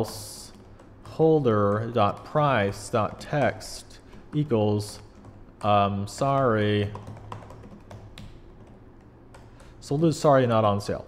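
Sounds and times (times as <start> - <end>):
keyboard typing: 0.0 - 11.0.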